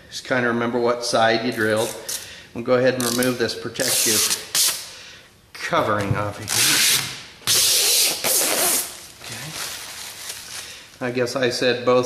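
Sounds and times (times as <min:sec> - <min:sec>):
plastic film peeling: 0:06.4 - 0:11.0.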